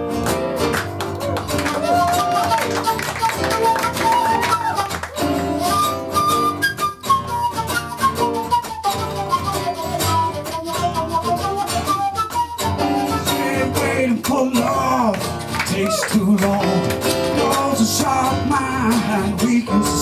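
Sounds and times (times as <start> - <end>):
strummed acoustic guitar: 0.0 - 20.0
flute melody: 1.6 - 14.1.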